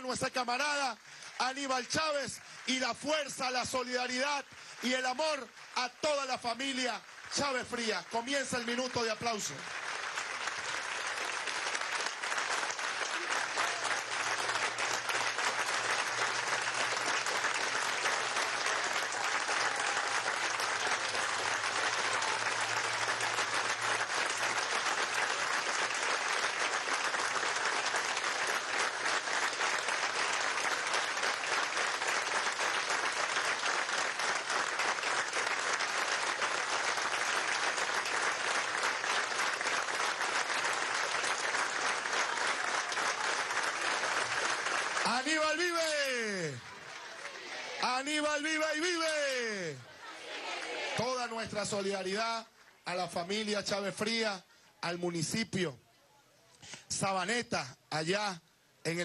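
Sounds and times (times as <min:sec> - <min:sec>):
large crowd clapping: 0:00.0 - 0:55.4.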